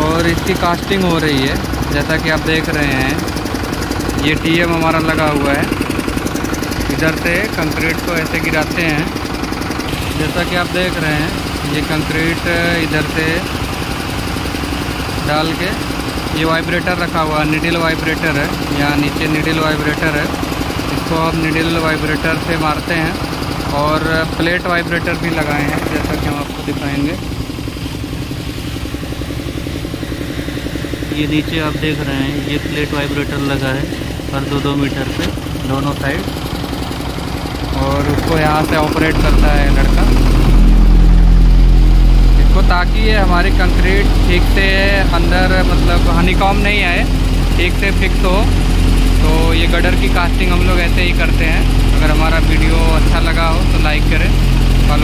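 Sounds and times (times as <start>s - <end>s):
concrete vibrators humming and rattling: 0.0s - 55.0s
construction machinery engine drone: 0.0s - 55.0s
voices talking: 37.7s - 41.1s, 42.0s - 55.0s.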